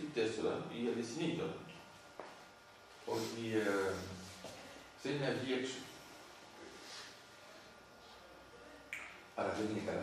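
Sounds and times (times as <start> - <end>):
man speaking: 3.0 - 4.4, 5.0 - 6.0, 9.4 - 10.0.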